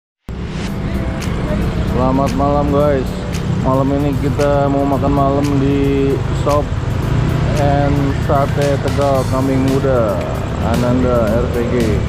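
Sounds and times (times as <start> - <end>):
background music: 0.3 - 12.0
traffic rumble: 0.3 - 12.0.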